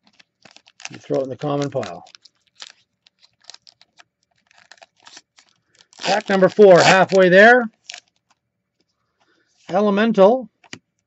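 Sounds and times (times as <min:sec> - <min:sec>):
foil pack crinkling: 0:00.0 - 0:08.4
cards being handled: 0:00.0 - 0:08.9.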